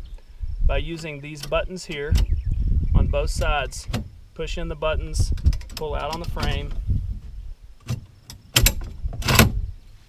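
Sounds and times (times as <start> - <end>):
sharp metal clicks: 1.3 - 2.4, 5.3 - 6.8, 7.8 - 9.6.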